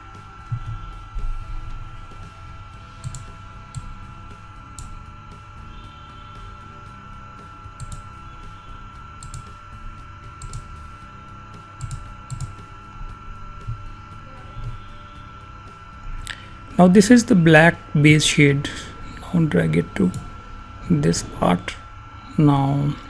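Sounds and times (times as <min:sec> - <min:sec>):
electrical hum and rumble: 0:00.0 - 0:23.0
computer mouse clicks: 0:03.0 - 0:03.9, 0:07.8 - 0:08.0, 0:09.2 - 0:09.5, 0:10.4 - 0:10.7, 0:11.8 - 0:12.5.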